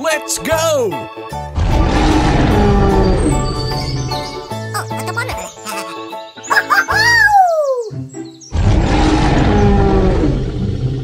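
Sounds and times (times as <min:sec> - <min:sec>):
deep dinosaur roar: 0:01.6 - 0:04.2, 0:08.6 - 0:11.0.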